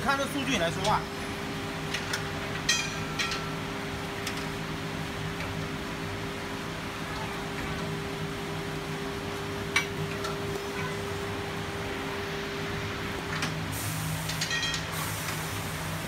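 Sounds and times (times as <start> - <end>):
machine hum: 0.0 - 16.0.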